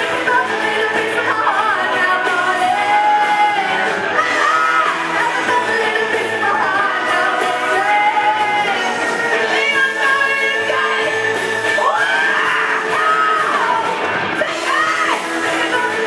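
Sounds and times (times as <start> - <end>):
live rock band playing: 0.0 - 16.0
women singing: 0.0 - 16.0.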